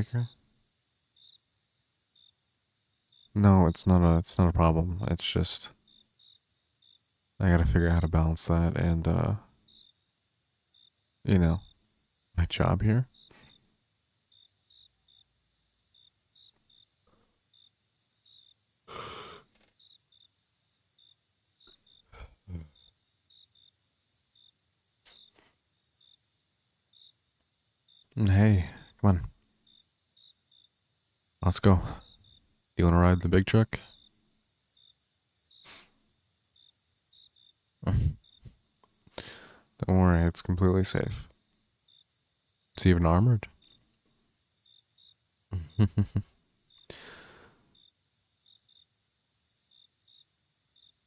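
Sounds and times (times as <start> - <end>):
crickets chirping: 0.0 - 51.0
high insect drone: 0.0 - 51.0
breathy sigh: 18.9 - 19.5, 39.2 - 39.7, 46.9 - 47.7.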